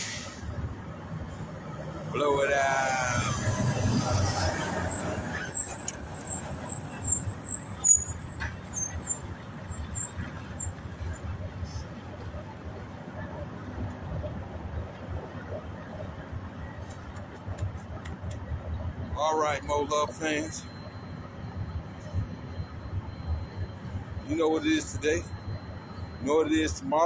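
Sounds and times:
distant road traffic rumble: 0.0s - 27.0s.

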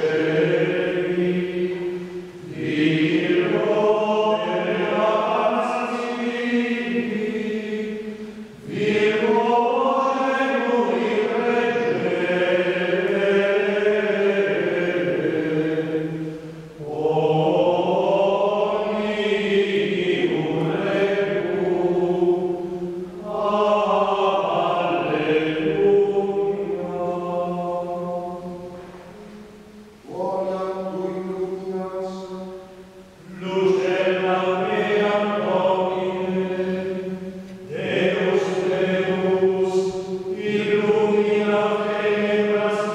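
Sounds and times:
voices singing chant: 0.0s - 42.9s
singers breathing: 16.1s - 16.8s.

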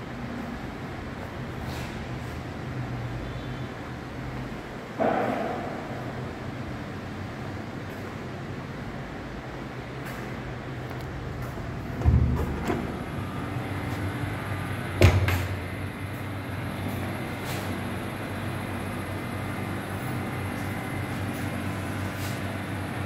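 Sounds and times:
steady low hum: 4.4s - 23.0s.

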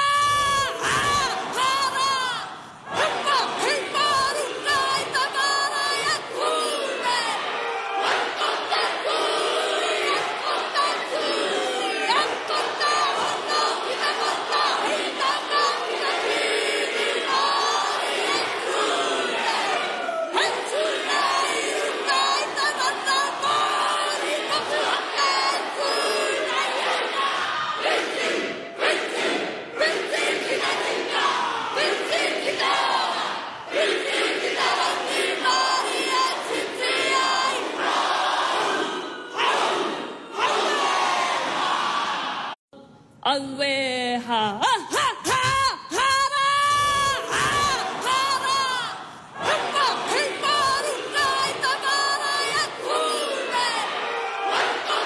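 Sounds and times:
group chanting: 0.0s - 42.6s, 45.3s - 55.0s
woman shouting a chant-like speech: 43.3s - 49.0s.

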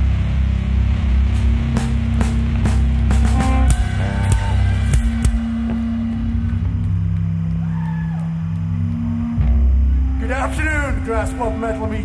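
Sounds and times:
electric guitar and bass chord: 0.0s - 12.0s
drum hits: 1.4s - 6.2s.

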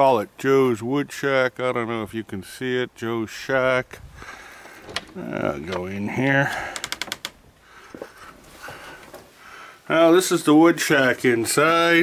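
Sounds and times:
sharp clicks: 4.9s - 7.4s.

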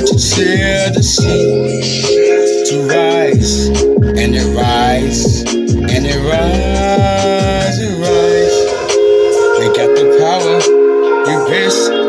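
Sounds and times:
backing music with low sweeps: 0.0s - 12.0s
man singing a long note: 2.2s - 12.0s.

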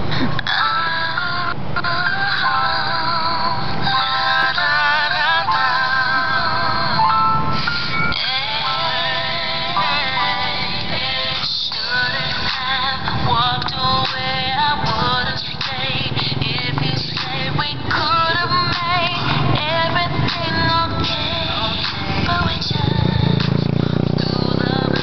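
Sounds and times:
song with sliding sung melody: 0.0s - 25.0s.

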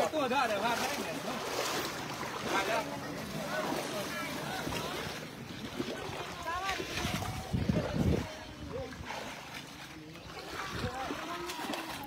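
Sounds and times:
people talking: 0.0s - 12.0s
water sloshing: 0.0s - 12.0s
wind on microphone: 5.6s - 9.3s.

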